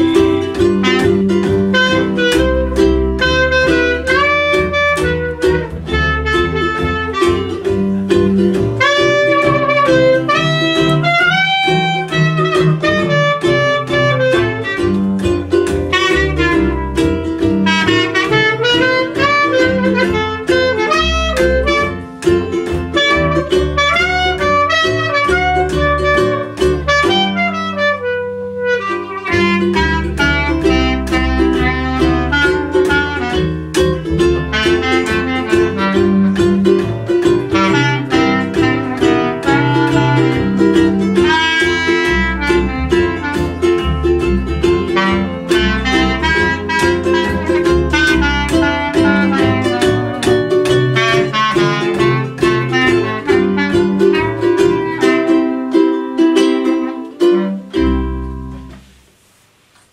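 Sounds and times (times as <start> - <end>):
clarinet melody: 0.0 - 59.0
plucked upright bass: 0.0 - 59.2
strummed ukulele: 0.0 - 59.9.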